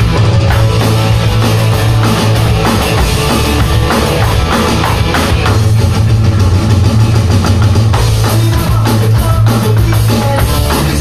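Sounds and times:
low bass drone: 0:00.0 - 0:08.2
electronic drum kit: 0:00.0 - 0:11.0
loud rock music: 0:00.0 - 0:11.0.

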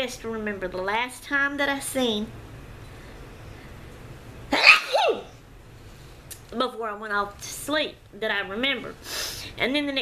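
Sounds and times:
woman sneezing: 0:04.5 - 0:05.3.

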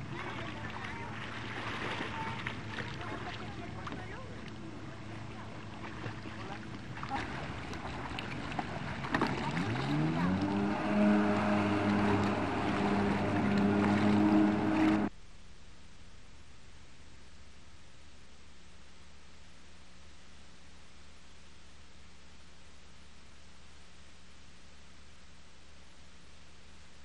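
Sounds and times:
jet ski engine revving: 0:06.6 - 0:15.1
low hiss: 0:15.1 - 0:27.0.

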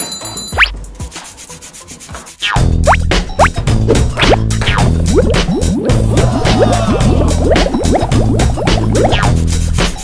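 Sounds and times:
cartoon music with slide whistle: 0:00.6 - 0:00.8, 0:02.4 - 0:09.5
rapid rubbing strokes: 0:01.0 - 0:02.6.

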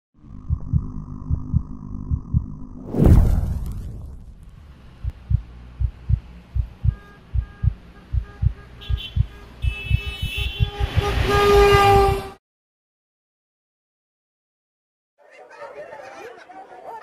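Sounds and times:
heartbeat-like thumps: 0:00.4 - 0:03.4, 0:05.0 - 0:12.0.

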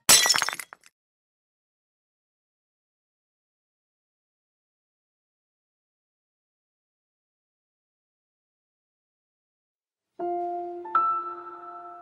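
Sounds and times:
brittle object shattering on floor: 0:00.1 - 0:00.9
pieces clinking: 0:00.1 - 0:00.9.

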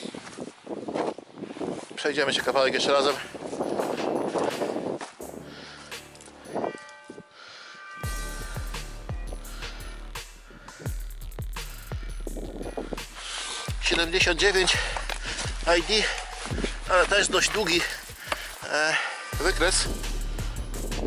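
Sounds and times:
wind rumbling on microphone: 0:00.0 - 0:05.7, 0:10.5 - 0:18.2.

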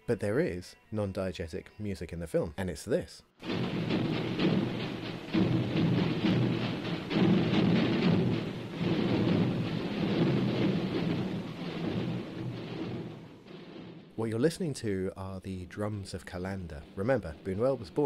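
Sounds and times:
mass of drums beating: 0:03.4 - 0:14.6, 0:16.6 - 0:18.0.

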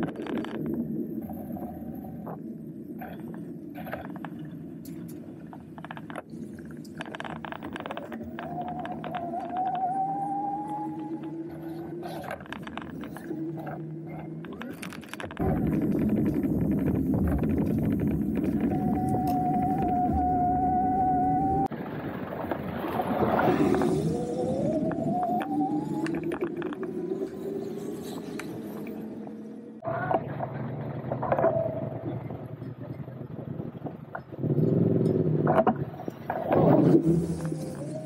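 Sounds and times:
low hum: 0:00.0 - 0:35.2
electric bicycle motor whine: 0:15.4 - 0:21.7, 0:23.4 - 0:29.8.

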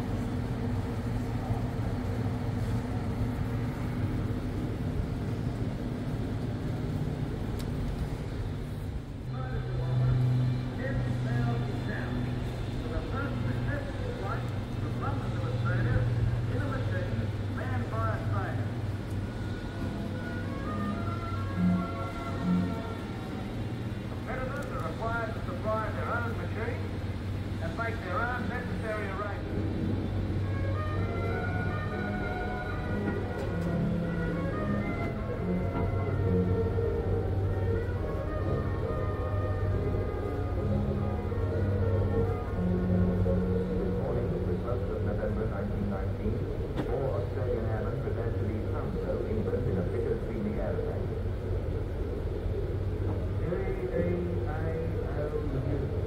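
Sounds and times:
film music over loudspeakers: 0:00.0 - 0:56.0
low drone in a large hall: 0:00.0 - 0:56.0.

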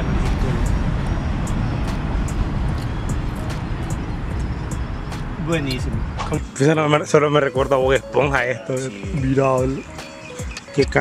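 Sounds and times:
steady low rumbling: 0:00.0 - 0:06.6.

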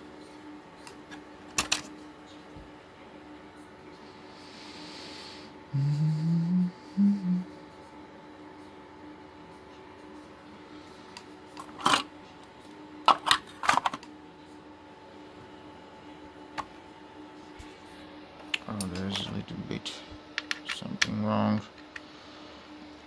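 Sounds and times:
faint steady hum: 0:00.0 - 0:23.0
person humming: 0:05.7 - 0:07.6.

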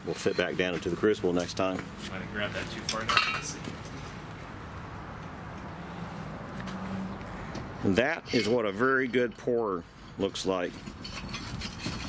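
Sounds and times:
metal clinking and clanking: 0:02.8 - 0:04.0.

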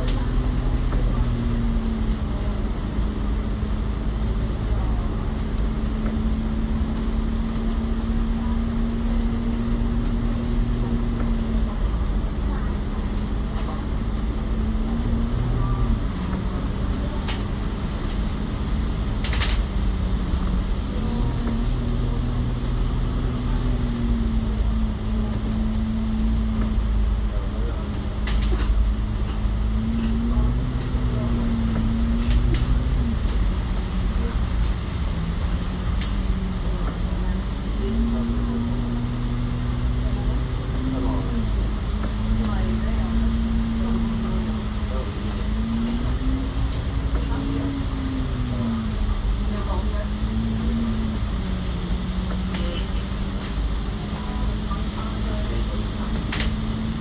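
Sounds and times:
bus engine drone: 0:00.0 - 0:57.0
road rumble: 0:00.0 - 0:57.0.

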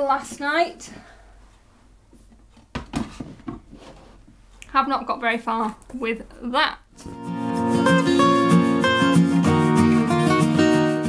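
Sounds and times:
wooden box knocking on shelf: 0:02.7 - 0:03.7
box scraping on shelf: 0:03.0 - 0:04.2.

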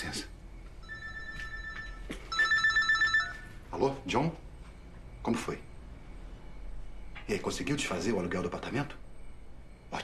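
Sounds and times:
mobile phone ringtone: 0:00.8 - 0:03.6.

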